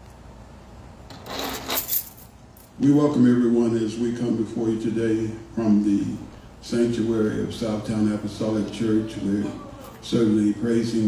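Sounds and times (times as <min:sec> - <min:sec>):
man speaking: 0:02.8 - 0:11.0.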